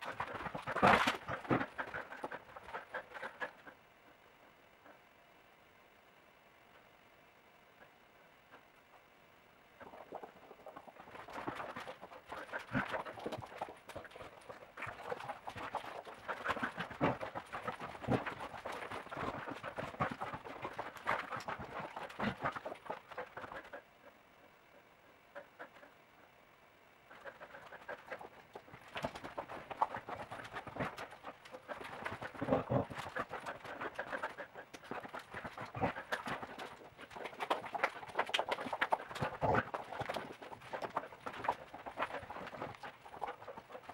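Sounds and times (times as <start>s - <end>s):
dog paws tapping and scuffing: 27.2s - 43.9s.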